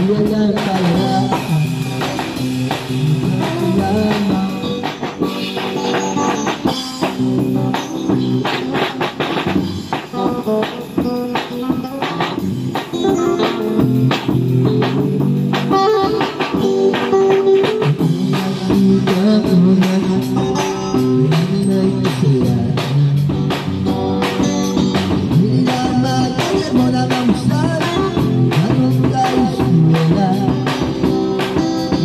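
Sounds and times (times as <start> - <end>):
drum kit playing steady beat: 0.0 - 32.0
electric guitar through amplifier: 0.0 - 32.0.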